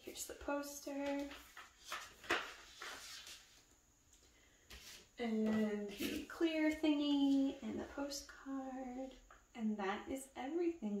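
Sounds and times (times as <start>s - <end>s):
paper rustling and sliding: 0.9s - 3.6s.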